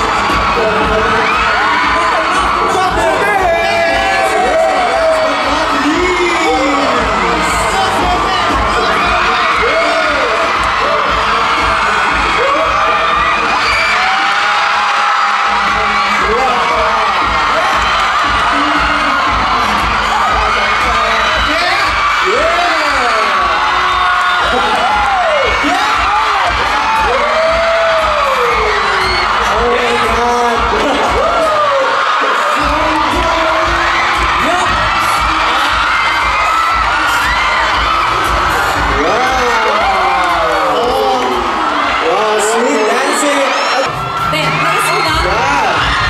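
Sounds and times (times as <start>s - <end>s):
crowd screaming and cheering: 0.0s - 46.0s.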